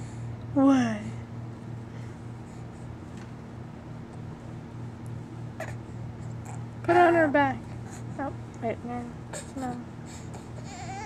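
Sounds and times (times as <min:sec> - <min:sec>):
steady low hum: 0:00.0 - 0:11.0
baby whining: 0:09.3 - 0:11.0.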